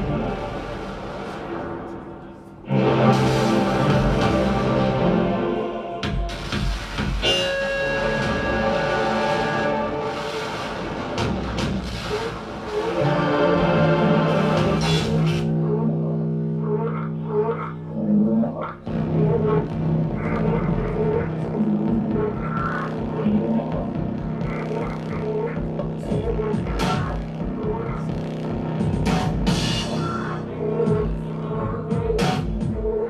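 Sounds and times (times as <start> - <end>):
electronic music: 0.0 - 33.0
low electronic drone: 0.0 - 33.0.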